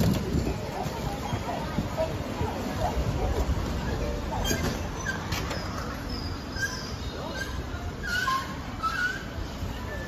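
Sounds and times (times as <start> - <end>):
street noise rumble: 0.0 - 10.0.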